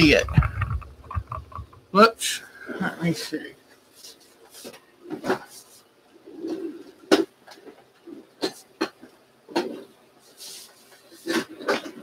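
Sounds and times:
sharp clicks and knocks: 0:00.0 - 0:01.9.

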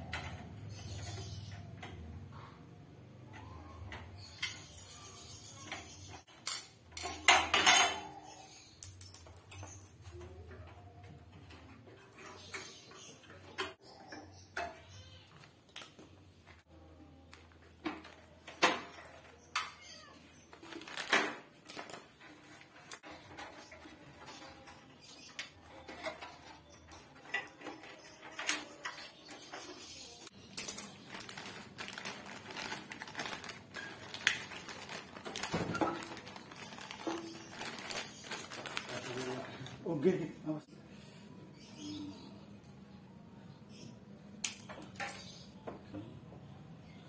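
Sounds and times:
metal tools clinking clatter: 0:04.2 - 0:15.0, 0:22.2 - 0:39.7.

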